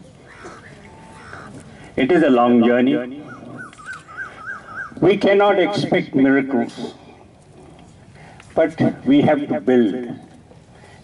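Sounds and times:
animal's high wavering call: 0.1 - 1.6, 3.2 - 5.0.

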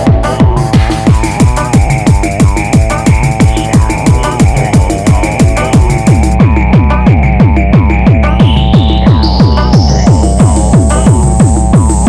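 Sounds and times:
deep bass: 0.0 - 12.0
fast kick drum: 0.0 - 12.0
high synth tone rising: 0.9 - 11.7.

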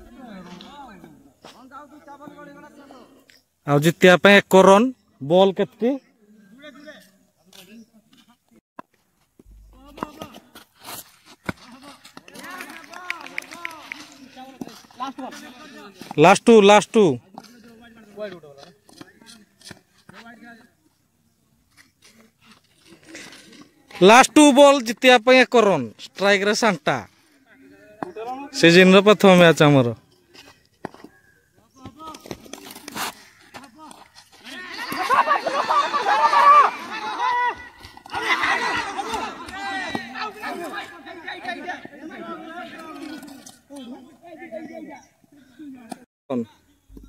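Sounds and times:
men talking over one another: 9.5 - 10.6, 11.4 - 20.8, 31.6 - 47.0.

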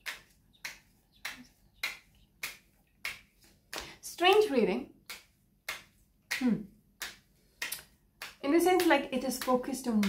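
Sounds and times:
sharp snapping clicks: 0.0 - 10.0.

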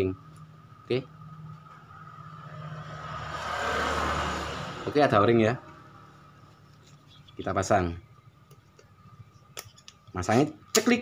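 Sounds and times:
road vehicle passing by: 0.7 - 7.7.

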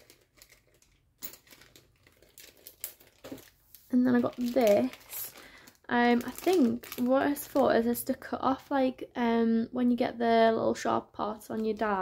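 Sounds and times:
packaging crinkling: 0.0 - 7.9.

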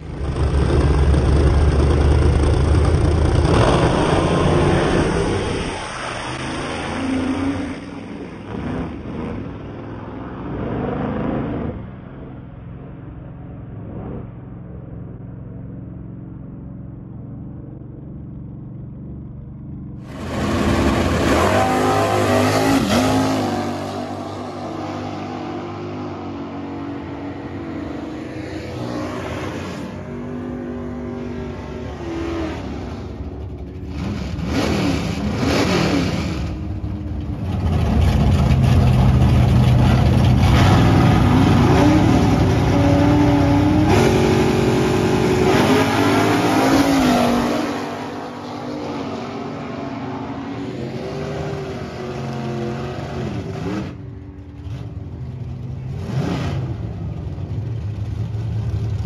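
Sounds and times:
drag car engines revving: 0.0 - 12.4, 19.4 - 59.0.

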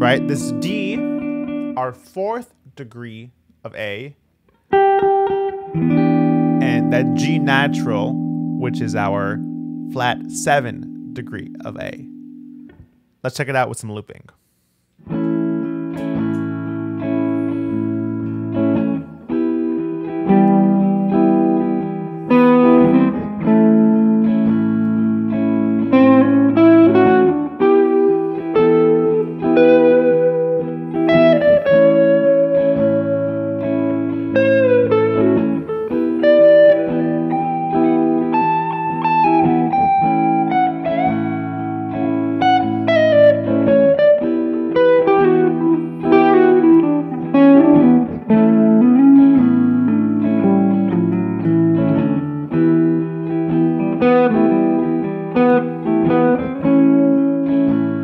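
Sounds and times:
electric guitar lead with bent notes: 0.0 - 2.1, 4.6 - 13.1, 15.0 - 58.0
electric guitar rhythm chords: 0.0 - 14.0, 15.0 - 58.0.

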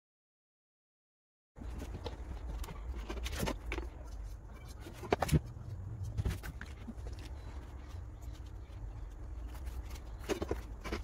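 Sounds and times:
paper rustling: 1.6 - 11.0.

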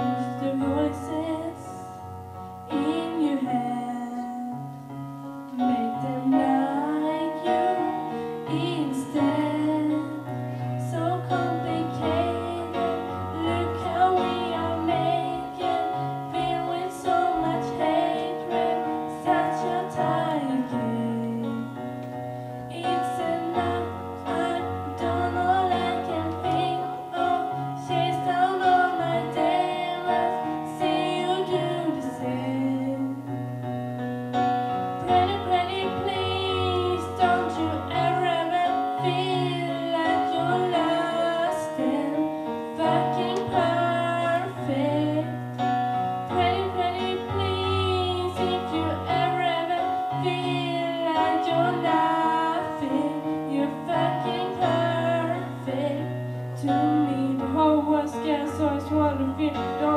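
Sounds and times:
girl singing into a microphone: 0.0 - 33.4, 35.0 - 45.6, 46.2 - 59.9
piano chords: 0.0 - 59.9.

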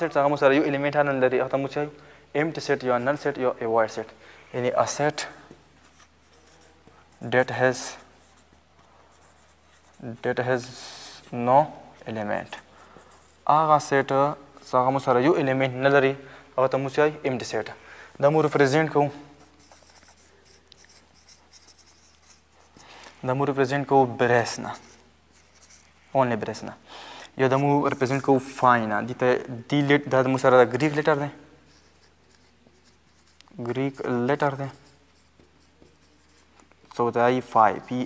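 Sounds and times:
marker pen scratching on whiteboard: 4.8 - 10.5, 19.4 - 22.8, 24.5 - 26.0, 31.7 - 36.7.

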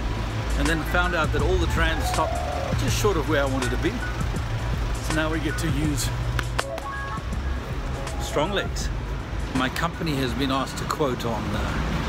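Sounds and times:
background music with low bass: 0.0 - 10.5.

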